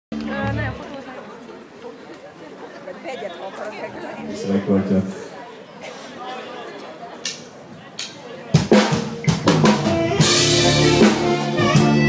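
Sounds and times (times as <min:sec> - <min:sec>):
audience chatter: 0:00.1 - 0:12.0
live band chord: 0:08.7 - 0:12.0.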